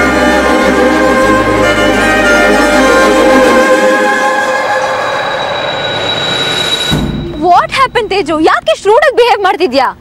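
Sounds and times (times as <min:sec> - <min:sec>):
sustained string chord: 0:00.0 - 0:08.2
thin steady high tone: 0:00.0 - 0:08.5.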